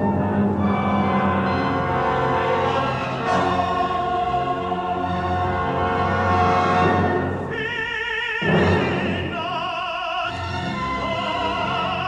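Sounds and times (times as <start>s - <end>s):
choir and orchestra: 0.0s - 12.0s.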